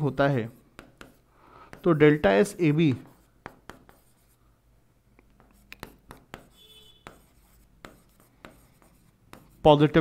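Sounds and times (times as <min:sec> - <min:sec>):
stylus tapping and scraping: 0:00.6 - 0:04.4, 0:05.2 - 0:09.6.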